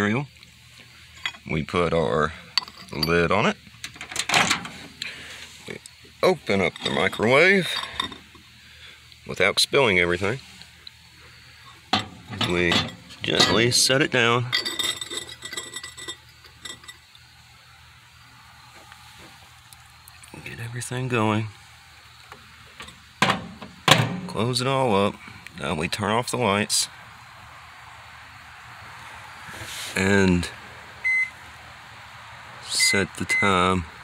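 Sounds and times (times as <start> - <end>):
glass plate scraping: 14.5 - 17.0.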